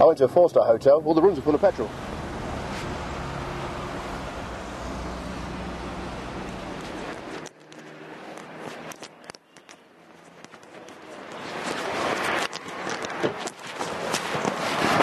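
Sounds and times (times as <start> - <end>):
car interior hum: 1.2 - 7.4
footsteps: 2.6 - 3.4, 6.2 - 14.6
clothes and bag rustling: 6.2 - 15.0.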